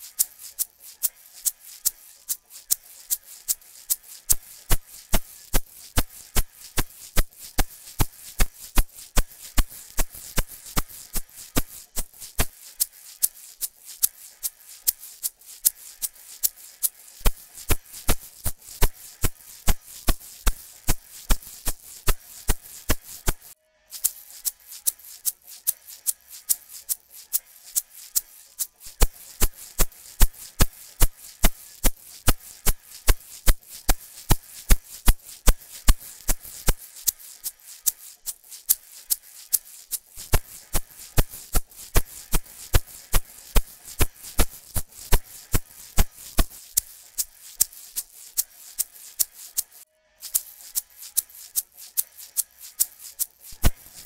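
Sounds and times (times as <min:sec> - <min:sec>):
egg shaker rhythm: 0:00.0 - 0:54.0.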